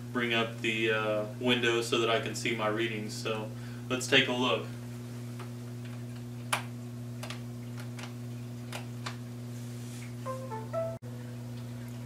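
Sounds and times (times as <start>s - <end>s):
low electrical hum: 0.0s - 12.0s
electronic tones: 10.3s - 11.0s.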